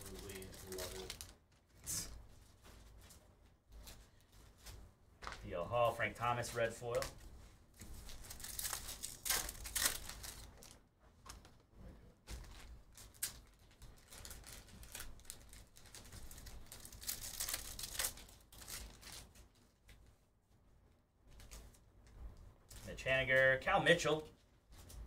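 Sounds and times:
plastic wrapper crinkling and tearing: 0.0 - 1.8, 7.8 - 11.6, 12.3 - 20.0
cards being handled: 0.0 - 5.4.

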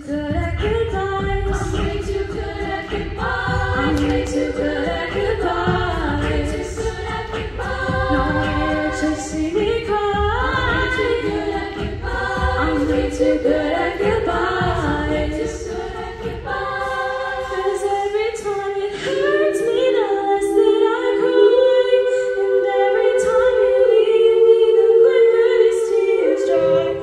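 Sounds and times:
a cappella group singing: 0.0 - 27.0.

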